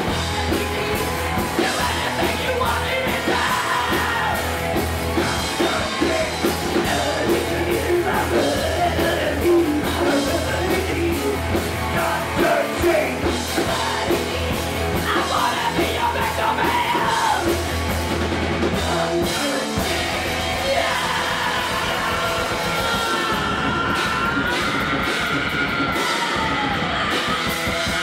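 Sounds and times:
person singing: 0:00.0 - 0:04.5, 0:05.2 - 0:17.6, 0:18.7 - 0:28.0
drum beat: 0:00.0 - 0:28.0
electric guitar: 0:00.0 - 0:28.0
live rock band: 0:00.0 - 0:28.0.

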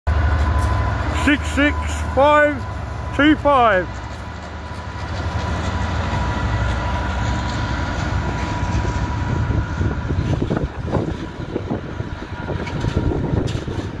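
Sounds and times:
diesel locomotive engine rumble: 0:00.1 - 0:14.0
wheels clattering over rail joints: 0:00.1 - 0:14.0.

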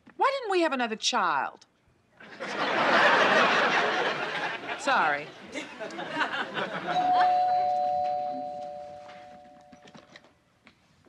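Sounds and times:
two-note doorbell chime: 0:07.0 - 0:09.8.

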